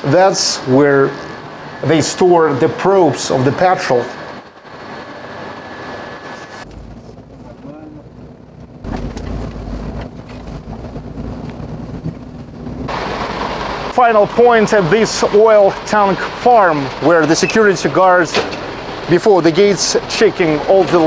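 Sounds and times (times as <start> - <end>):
truck engine rumble: 0.0 - 21.0.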